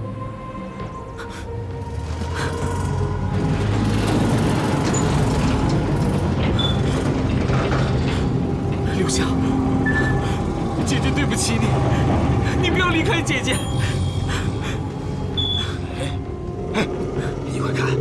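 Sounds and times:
dramatic music: 0.0 - 18.0.

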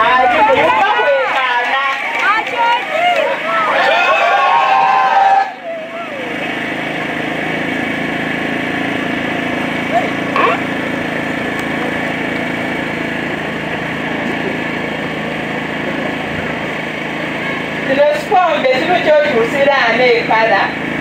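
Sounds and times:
steady engine-like drone: 0.0 - 21.0.

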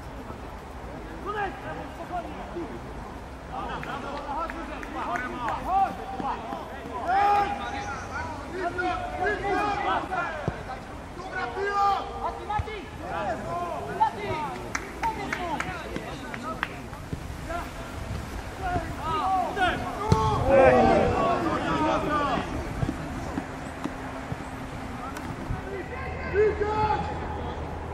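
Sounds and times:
players shouting: 3.5 - 27.9.

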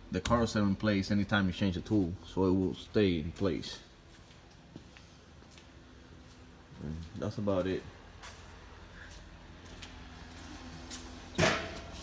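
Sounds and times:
low hum of shop equipment: 0.0 - 12.0.

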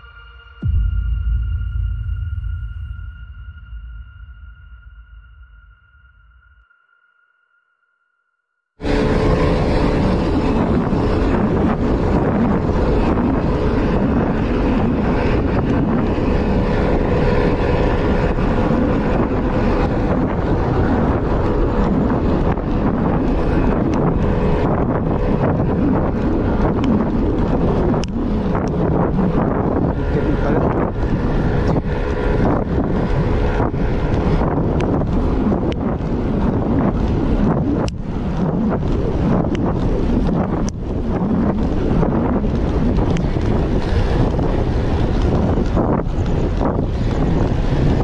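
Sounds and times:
music: 0.0 - 8.0
wind buffeting microphone: 8.8 - 48.0.

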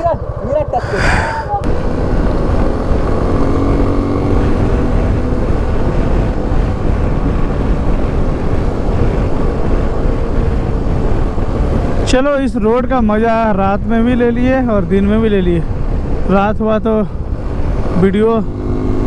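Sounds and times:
motorcycle engine cruising: 0.0 - 19.0
wind rush over microphone: 0.0 - 19.0.

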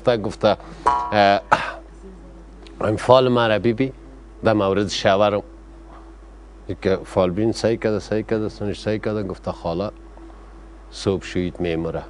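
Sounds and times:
man speaking: 0.0 - 1.8, 2.8 - 5.6, 6.6 - 10.0, 10.9 - 12.0
man clearing throat: 1.4 - 1.9.

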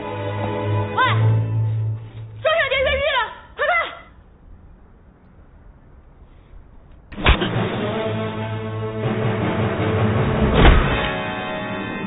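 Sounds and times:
punch impact hit: 7.2 - 7.6, 10.4 - 11.2
dramatic music: 7.2 - 12.0.

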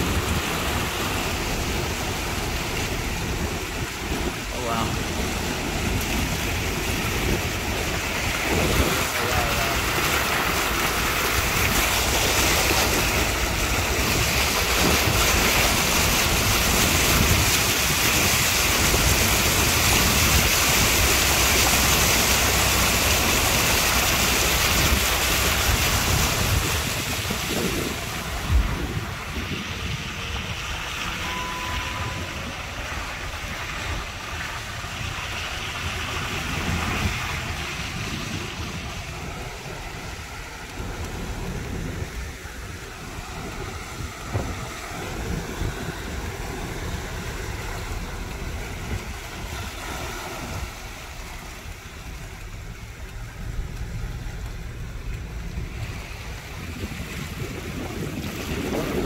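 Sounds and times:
floodwater rushing against vehicle: 0.0 - 59.0.

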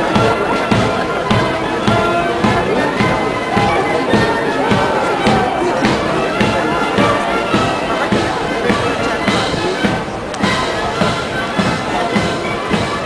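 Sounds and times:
military band playing a march: 0.0 - 13.0.

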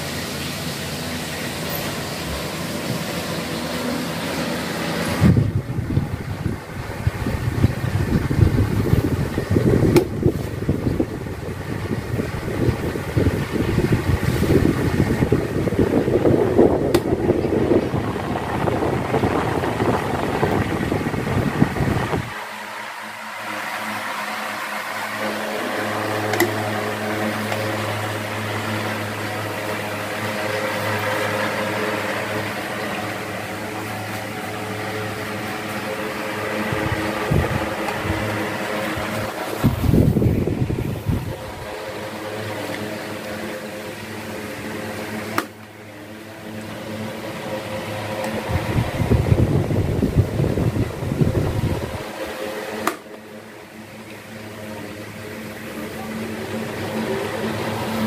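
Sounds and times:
air buffeting microphone: 0.0 - 58.0
electric fans running: 0.0 - 58.0.

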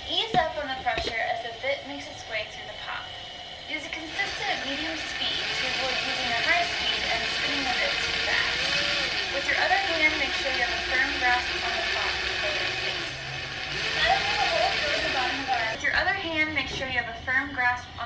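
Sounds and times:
cordless drill grinding into ceramic: 4.1 - 15.8.

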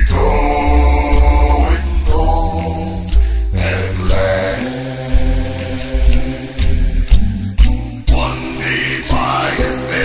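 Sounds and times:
a cappella gospel singing: 0.0 - 10.0
deep bass voice line: 0.0 - 10.0.

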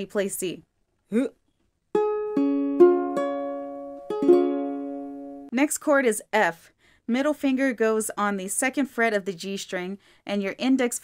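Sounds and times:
ukulele strings plucked and strummed: 1.9 - 5.5.

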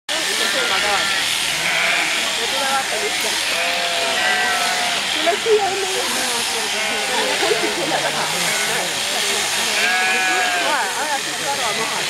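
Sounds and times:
electric shears buzzing: 0.1 - 12.0
people talking: 0.1 - 12.0
sheep bleating: 0.3 - 12.0.

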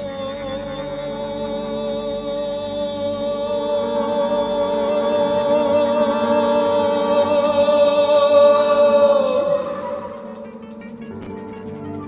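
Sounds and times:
acoustic ensemble playing held notes: 0.0 - 12.0.

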